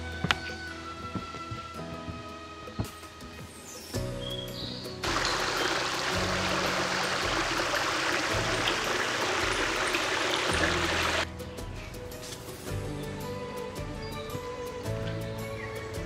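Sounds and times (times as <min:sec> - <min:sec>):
background music: 0:00.0 - 0:16.0
brook splashing over stones: 0:05.0 - 0:11.3.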